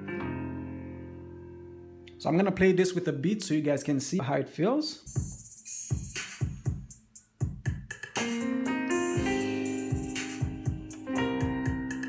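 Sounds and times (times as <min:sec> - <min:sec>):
digital keyboard chords: 0:00.0 - 0:02.5, 0:05.1 - 0:12.0
drum machine beat: 0:05.1 - 0:12.0.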